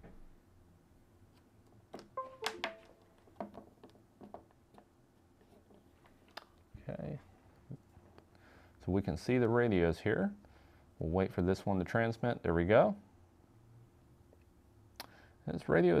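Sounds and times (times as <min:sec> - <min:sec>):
keypad button clicks: 0:02.2 - 0:03.0.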